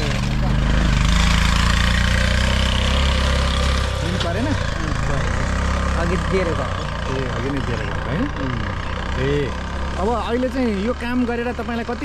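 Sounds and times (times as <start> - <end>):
auto-rickshaw engine running: 0.0 - 12.0.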